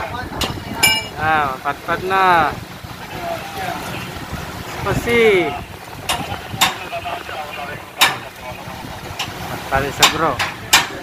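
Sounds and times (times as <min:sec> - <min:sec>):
faint voices: 0:00.0 - 0:11.0
ship engines rumbling: 0:00.0 - 0:11.0.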